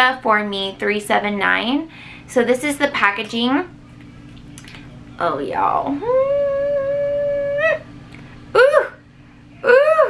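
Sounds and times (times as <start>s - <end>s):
woman's high held ooh: 6.0s - 7.9s, 9.6s - 10.0s.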